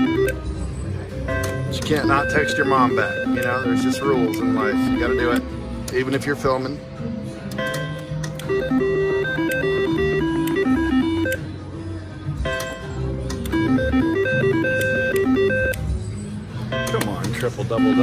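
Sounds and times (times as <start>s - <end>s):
slot machine beeping tunes: 0.0s - 6.6s, 7.5s - 11.7s, 12.4s - 18.0s.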